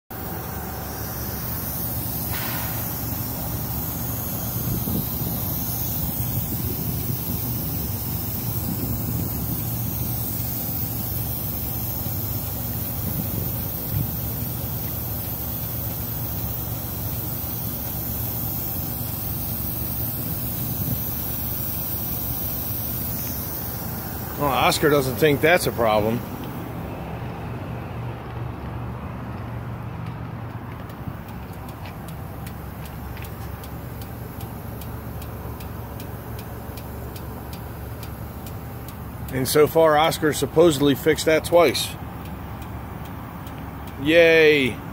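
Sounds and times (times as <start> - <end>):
air leak hissing: 0.1 - 27.5, 30.5 - 44.9
truck engine idling: 0.1 - 44.9.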